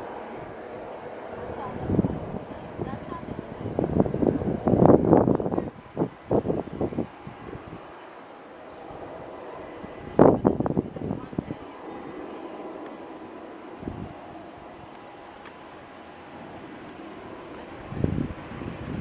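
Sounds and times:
voices: 0.0s - 18.6s
distant jet engines running: 0.0s - 19.0s.

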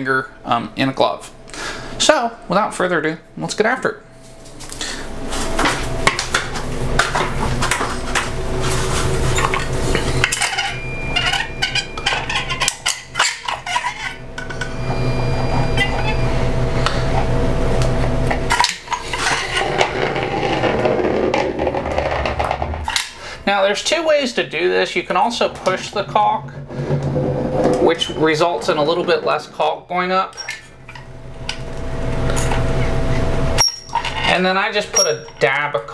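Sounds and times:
steady low hum: 0.0s - 35.9s.

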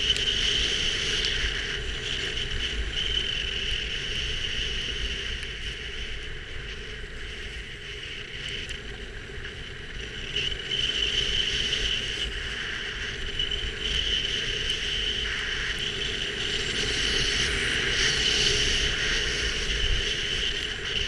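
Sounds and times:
wind on camera microphone: 0.0s - 21.0s.

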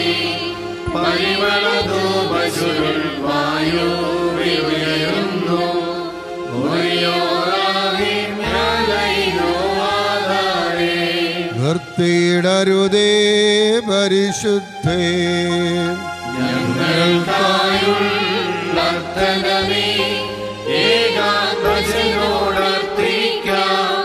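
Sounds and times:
choir singing a hymn: 0.0s - 12.3s, 15.1s - 24.0s.

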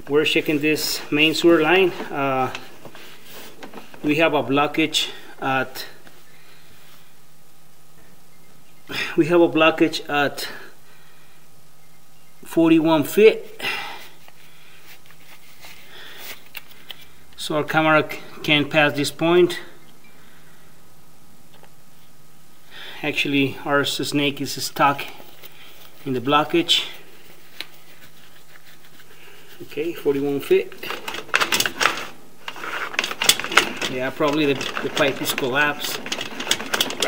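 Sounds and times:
cable clicking and rattling: 0.0s - 4.2s, 30.2s - 37.0s
faint hum: 0.0s - 37.0s.

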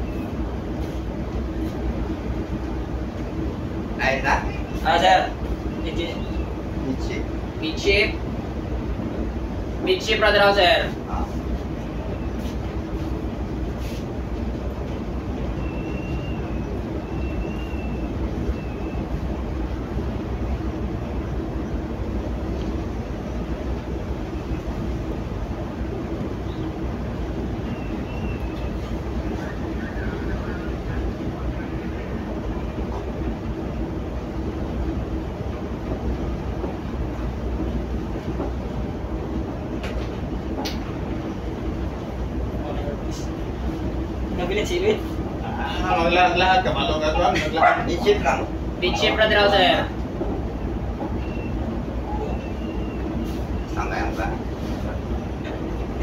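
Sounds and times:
ship machinery rumble: 0.0s - 56.0s
wind: 0.0s - 56.0s.

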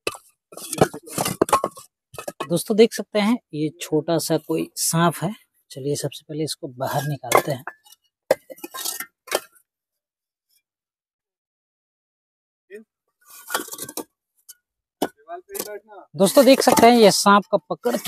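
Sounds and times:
bricks clinking and knocking: 0.0s - 2.6s, 6.8s - 9.6s, 13.4s - 18.0s.

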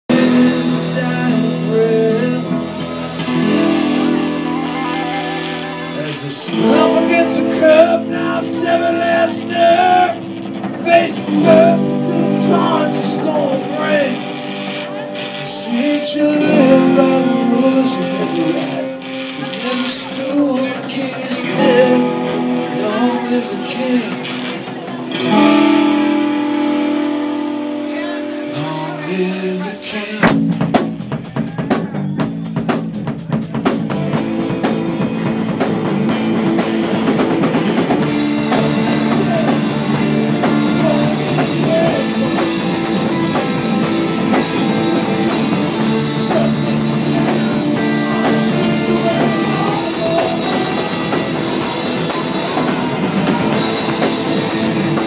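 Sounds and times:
rock band playing: 0.0s - 55.0s
electric guitars ringing chord: 0.1s - 31.0s, 33.9s - 55.0s.

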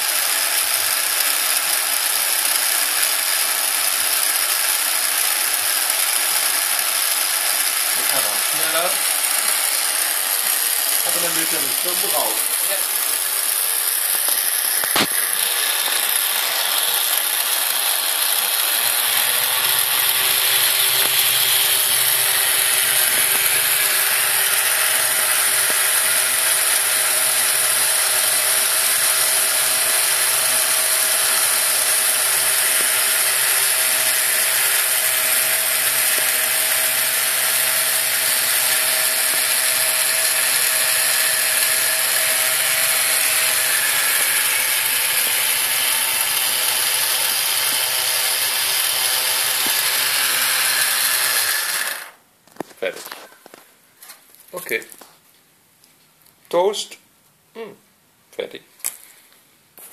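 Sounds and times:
toaster motor whirring: 0.0s - 52.2s.

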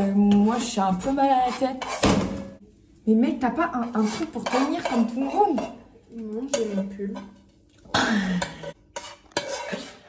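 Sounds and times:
utensil scraping rice from pan: 3.8s - 5.1s, 8.9s - 10.0s.

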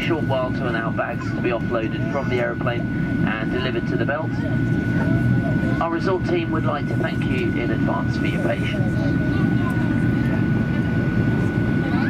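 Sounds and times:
airplane engine and airflow rumble: 0.0s - 12.0s.

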